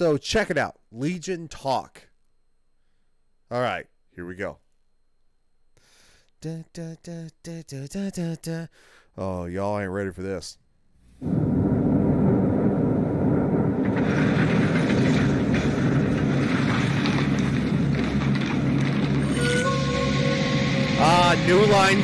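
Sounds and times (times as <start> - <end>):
low rumbling drone: 11.2 - 22.0
held higher tones: 19.2 - 22.0.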